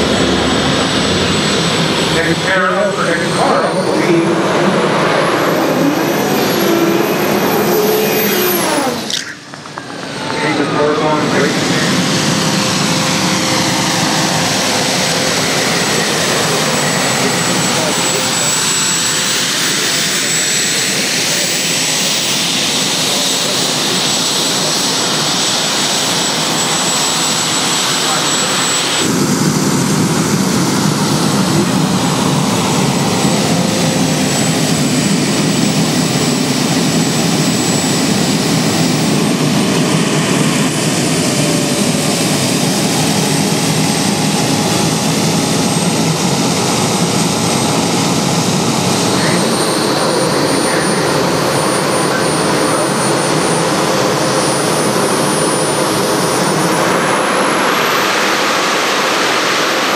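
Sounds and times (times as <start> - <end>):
thin high whine: 0.0 - 21.5
jet engine roar: 0.0 - 59.9.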